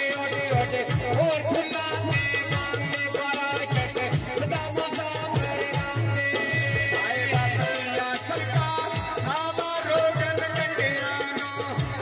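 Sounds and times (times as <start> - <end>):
hand drums rhythm: 0.0 - 12.0
man singing through a pa: 0.0 - 12.0.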